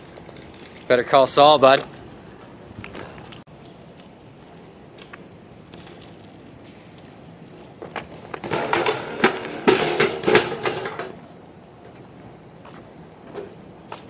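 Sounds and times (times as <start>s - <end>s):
bike knocking and scraping pavement: 0.0s - 14.0s
bike rolling on concrete: 0.0s - 14.0s.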